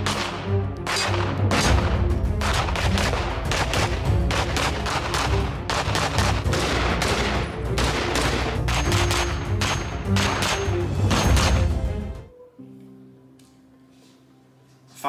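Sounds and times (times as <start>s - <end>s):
rapid gunshots: 0.0s - 11.7s.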